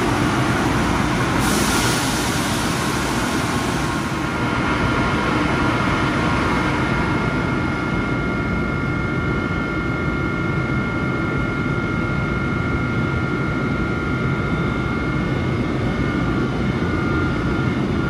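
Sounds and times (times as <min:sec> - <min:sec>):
cooling blowers whirring: 0:00.0 - 0:18.0.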